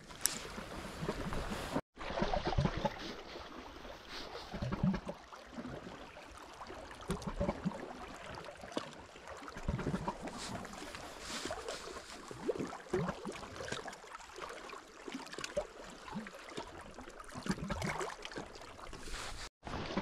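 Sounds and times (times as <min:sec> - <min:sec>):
waves lapping against rocks: 0:00.0 - 0:20.0.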